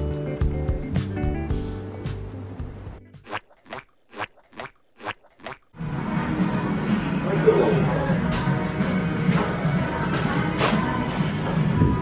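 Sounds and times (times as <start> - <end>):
busy room background noise: 5.8 - 12.0.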